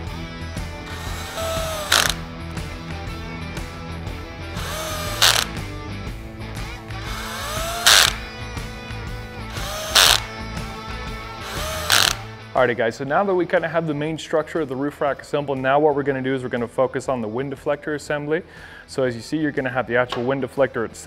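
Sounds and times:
background music: 0:00.0 - 0:21.0
cordless drill driving screws: 0:00.9 - 0:02.2, 0:04.6 - 0:05.6, 0:07.0 - 0:08.2, 0:09.5 - 0:10.3, 0:11.4 - 0:12.3.

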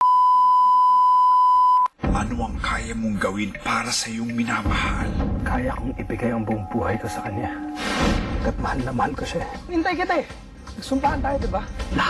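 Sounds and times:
steady line-up tone beep: 0:00.0 - 0:01.9.

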